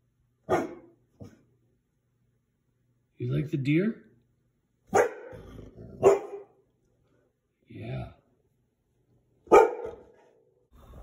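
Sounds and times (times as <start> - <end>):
dog barking: 0.4 - 1.4, 4.9 - 6.6, 9.4 - 10.5.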